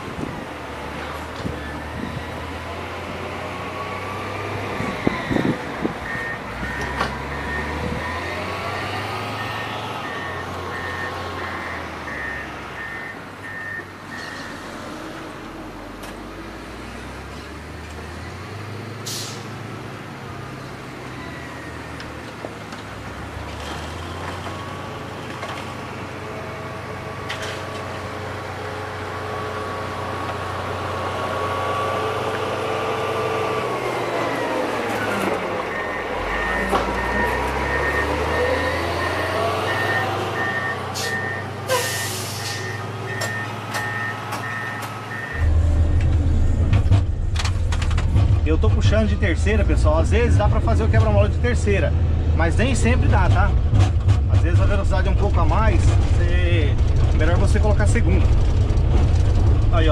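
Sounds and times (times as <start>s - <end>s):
grader diesel engine passing: 0.0s - 59.9s
regular beeps: 21.2s - 21.8s, 35.7s - 41.5s
deep engine rumble inside cab: 45.3s - 59.9s.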